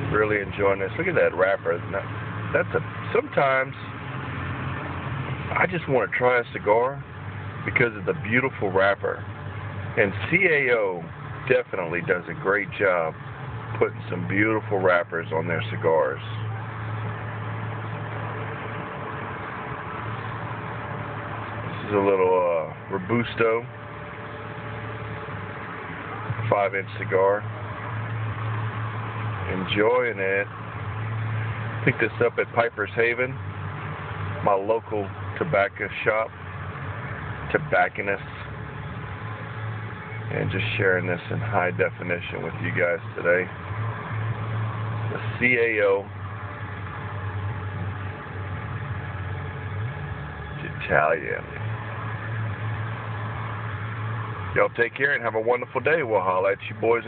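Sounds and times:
car engine hum from cabin: 0:00.0 - 0:57.0.

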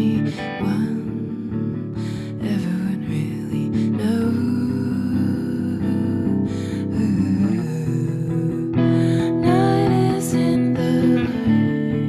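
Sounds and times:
guitar chords ringing: 0:00.0 - 0:12.0
wordless singing voice: 0:00.0 - 0:12.0.

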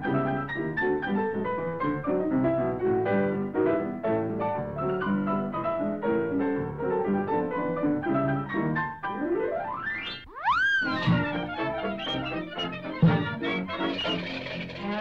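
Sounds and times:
high whistling tone: 0:09.8 - 0:14.5
cartoon orchestral music: 0:10.0 - 0:15.0.

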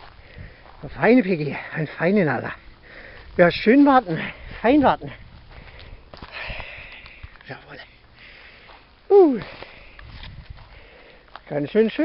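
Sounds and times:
rustling in dry grass: 0:00.0 - 0:12.0
sniffing and breathing: 0:02.8 - 0:03.4, 0:08.0 - 0:11.3.

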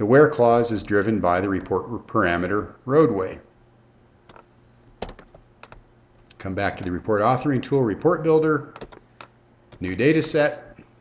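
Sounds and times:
keyboard key clicks: 0:04.3 - 0:07.0, 0:08.8 - 0:10.0.

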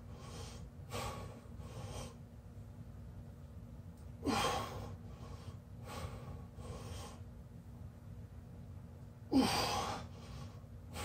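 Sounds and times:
man breathing hard: 0:00.0 - 0:02.2, 0:04.2 - 0:07.3, 0:09.3 - 0:11.0.

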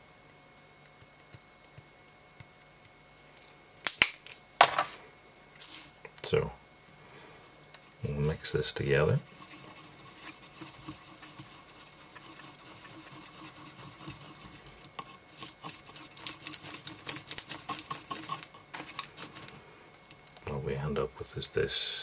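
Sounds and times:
skewer scratching while stirring: 0:07.5 - 0:20.6.

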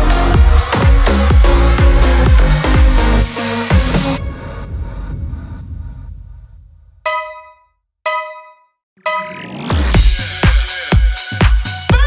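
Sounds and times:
dance music with heavy beat: 0:00.0 - 0:04.2, 0:09.3 - 0:12.0
bell-like timer dings: 0:07.1 - 0:09.8.

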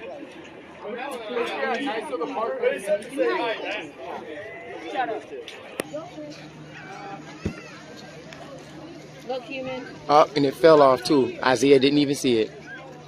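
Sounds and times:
people chattering: 0:00.0 - 0:13.0.

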